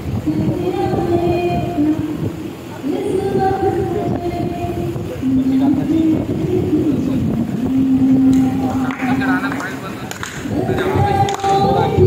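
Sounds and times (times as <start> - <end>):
woman singing over pa system: 0.0 - 9.6, 10.4 - 12.0.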